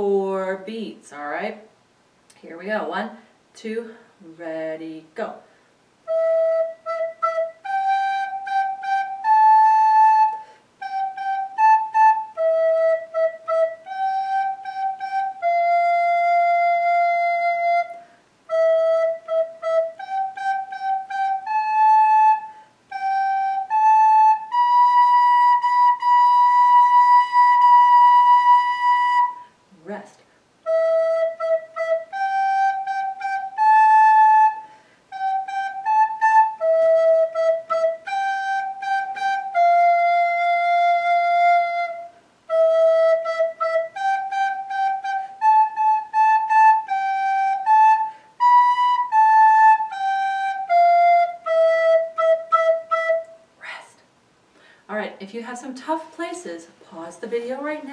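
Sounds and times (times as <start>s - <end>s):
recorder playing slow melody: 6.1s - 29.5s, 30.6s - 53.4s.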